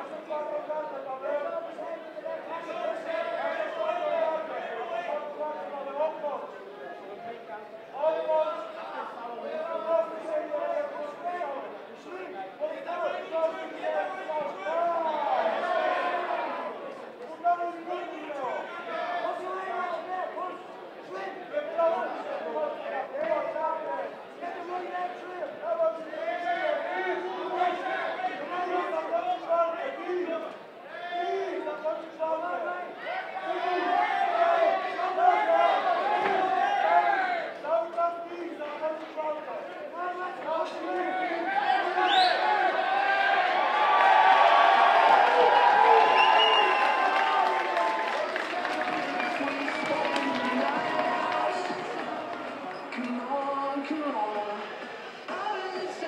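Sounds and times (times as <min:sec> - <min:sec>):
crowd shouting and yelling: 0:00.0 - 0:56.0
crowd cheering: 0:01.3 - 0:05.8, 0:08.5 - 0:23.7, 0:32.4 - 0:37.7, 0:39.6 - 0:56.0.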